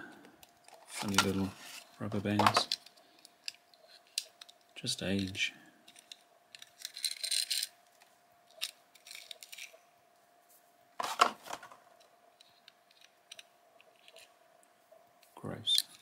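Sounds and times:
faint steady hum: 0.0s - 16.0s
plastic packaging rustle: 0.8s - 2.9s.

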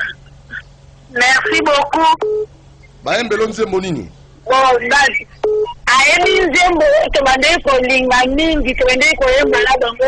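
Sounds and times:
telephone beep: 2.2s - 2.5s, 5.4s - 5.8s.

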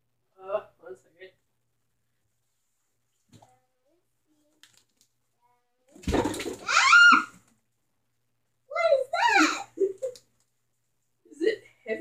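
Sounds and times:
child squealing: 6.6s - 7.4s, 9.2s - 9.7s.

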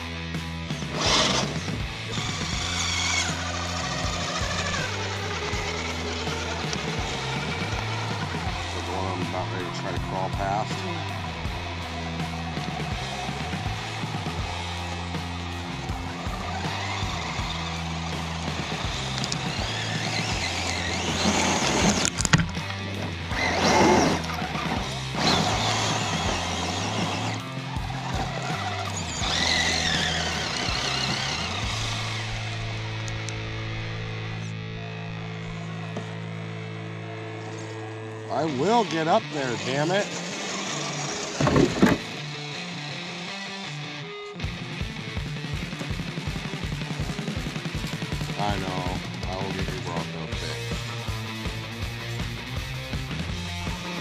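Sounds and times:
background music with low notes: 0.0s - 40.1s, 41.4s - 54.0s
tires scrabbling in dirt and rock: 0.0s - 43.4s, 45.3s - 54.0s
small electric motor whirring: 0.8s - 22.5s, 23.2s - 33.4s, 37.4s - 42.2s.

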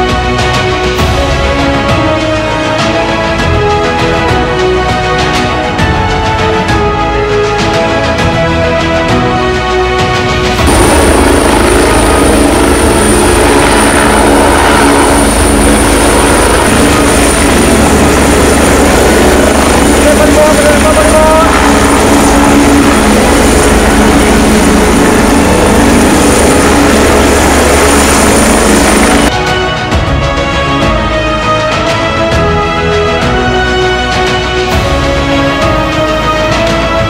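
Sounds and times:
helicopters flying overhead: 0.0s - 37.0s.

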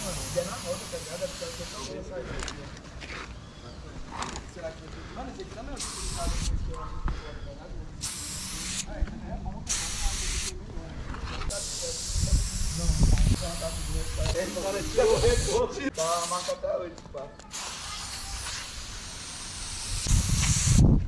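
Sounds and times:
aerosol spray can spraying: 0.0s - 1.9s, 5.8s - 6.5s, 8.0s - 8.9s, 9.7s - 10.5s, 11.5s - 16.6s, 17.5s - 20.8s.

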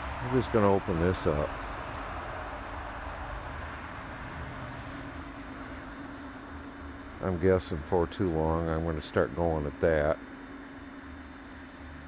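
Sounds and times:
low fluctuating rumble: 0.0s - 8.4s
faint steady hum: 0.0s - 12.0s.

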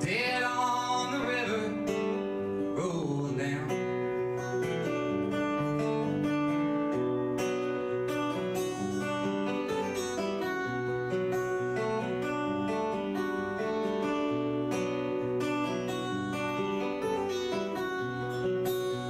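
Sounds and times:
acoustic guitar picking: 0.0s - 19.0s.

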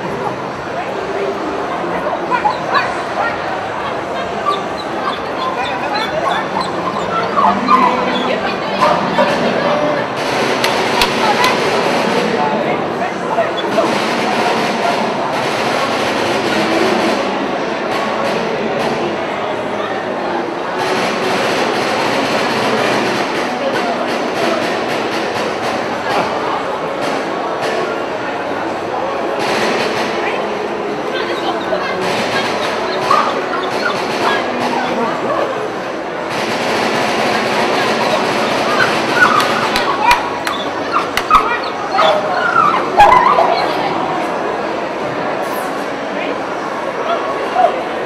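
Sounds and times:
crowd chatter: 0.0s - 48.0s.

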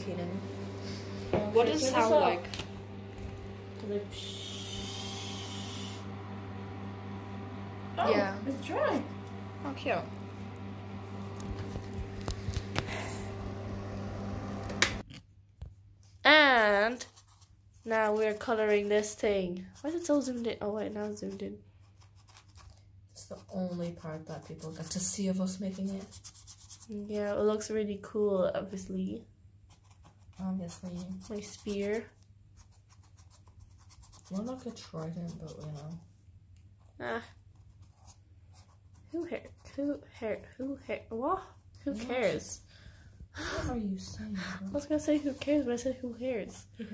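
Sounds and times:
steady electric hum: 0.0s - 15.1s, 23.1s - 46.9s
marker scratching on cardboard: 16.8s - 27.5s, 29.7s - 36.0s, 37.5s - 40.0s.

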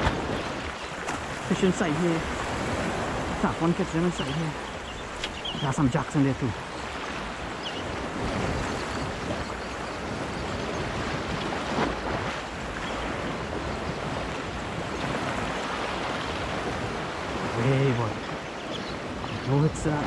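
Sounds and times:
small waves lapping on sand: 0.0s - 20.0s
wind on microphone: 0.0s - 20.0s.

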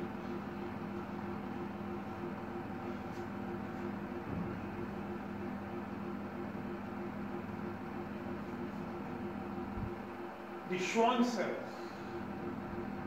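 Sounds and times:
machine hum: 0.0s - 13.0s.

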